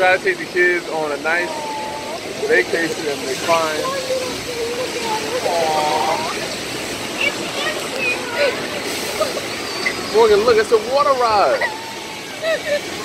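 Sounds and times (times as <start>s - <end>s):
water rushing: 0.0s - 13.0s
child crying and whimpering: 1.4s - 2.3s, 11.5s - 13.0s.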